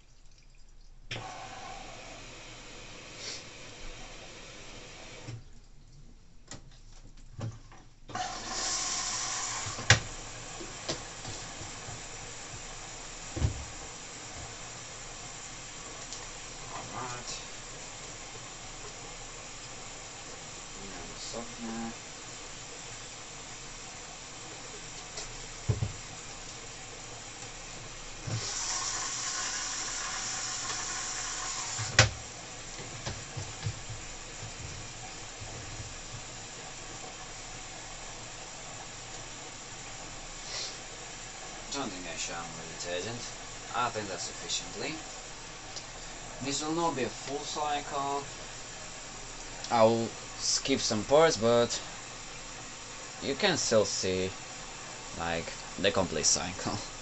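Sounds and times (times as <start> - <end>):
water hissing into washing machine: 1.1 - 5.4, 8.1 - 57.0
washing machine drum thuds: 13.3 - 14.6, 25.6 - 26.1, 31.7 - 36.3.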